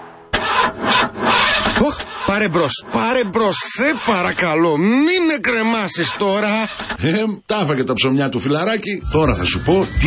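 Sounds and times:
car starter motor cranking: 0.4 - 4.6, 5.9 - 7.1.

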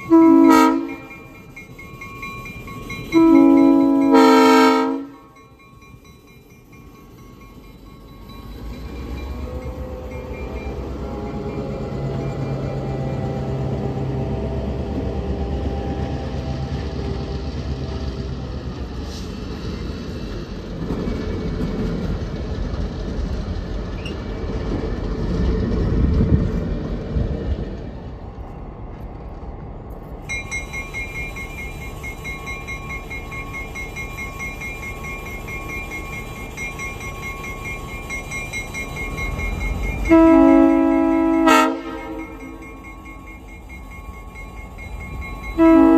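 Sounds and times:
diesel locomotive passing: 0.0 - 45.9
train wheels rumbling on rail: 0.0 - 45.9.

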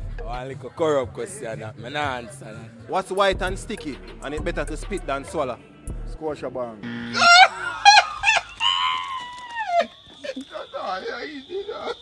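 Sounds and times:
high-pitched voice shrieking: 7.2 - 9.9
thin steady high tone: 9.7 - 12.0.

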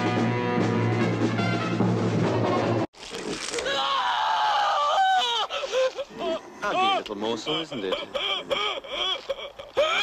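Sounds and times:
man crying out in pain: 3.6 - 10.0.

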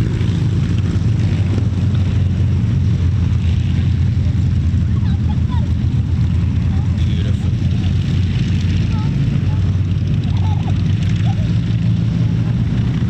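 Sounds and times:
piston aircraft engines droning: 0.0 - 13.0.

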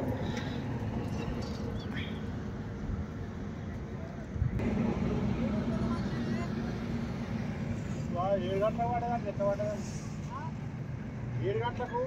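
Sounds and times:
vehicle rumble: 0.0 - 12.0.

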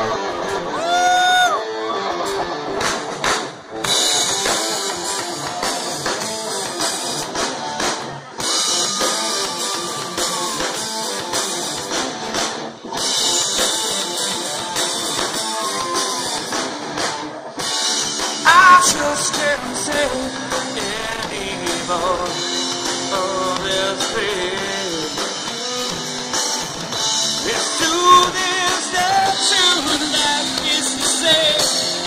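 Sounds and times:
bass guitar: 0.0 - 32.0
drum kit: 2.2 - 32.0.

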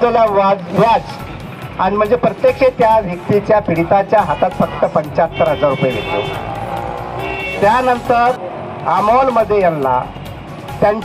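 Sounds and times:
man speaking into a microphone: 0.0 - 1.2, 1.8 - 6.4, 7.6 - 10.1
road traffic: 0.0 - 11.0.

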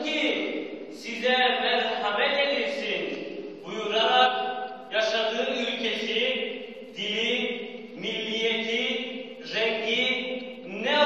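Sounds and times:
man chanting melodic recitation: 0.0 - 11.0.

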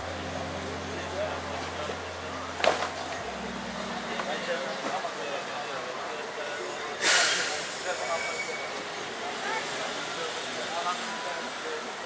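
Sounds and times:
air brake hiss: 6.9 - 8.6.

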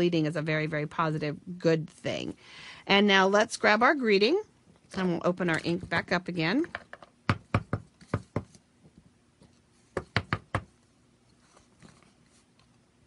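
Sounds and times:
stamp block tapping ink pad: 10.0 - 10.7.

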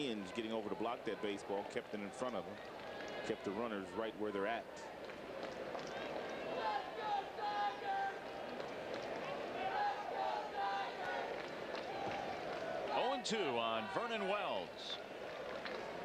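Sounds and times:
crowd chatter: 0.0 - 16.0
fans calling out: 6.0 - 8.6, 9.2 - 15.1.

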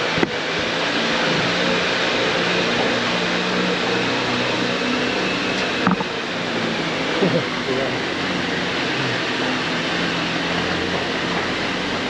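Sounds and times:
low engine hum: 0.0 - 12.0
rushing noise: 0.0 - 12.0.

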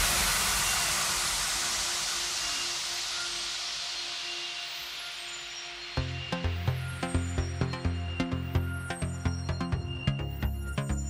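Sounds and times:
white-noise wash: 0.0 - 5.6.

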